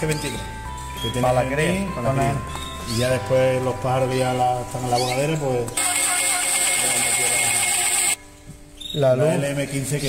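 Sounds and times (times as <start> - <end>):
machine noise with high whine: 5.7 - 8.2.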